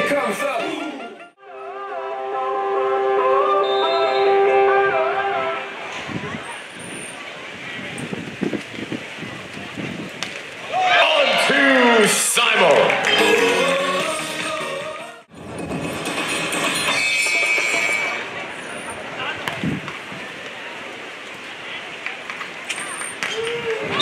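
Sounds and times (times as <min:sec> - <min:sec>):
stadium music: 0:00.0 - 0:06.0, 0:10.7 - 0:15.3
arena ambience: 0:00.0 - 0:15.3
loud excited shouting: 0:10.7 - 0:13.9.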